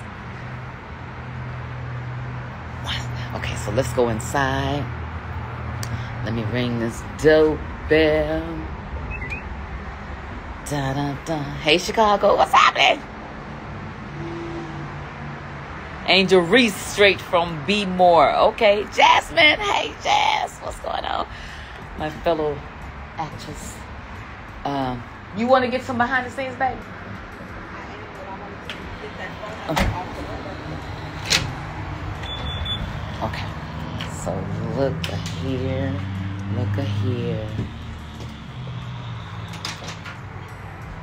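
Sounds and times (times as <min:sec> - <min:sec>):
distant traffic: 0:00.0 - 0:41.0
high-pitched electronic beeps: 0:09.1 - 0:09.6.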